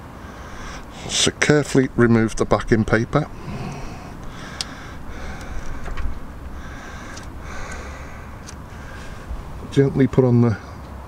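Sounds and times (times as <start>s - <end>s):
steady low rumble: 0.0s - 10.4s
faint clicks: 3.6s - 9.2s.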